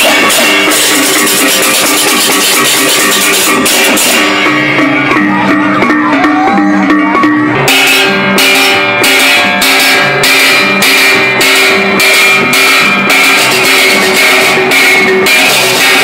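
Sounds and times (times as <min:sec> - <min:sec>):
bronze gongs ringing: 0:00.0 - 0:16.0
hand cymbals clashing: 0:00.0 - 0:16.0.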